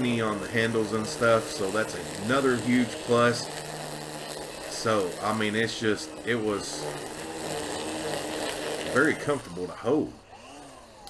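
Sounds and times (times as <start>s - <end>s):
string trimmer cutting grass: 0.0s - 11.0s.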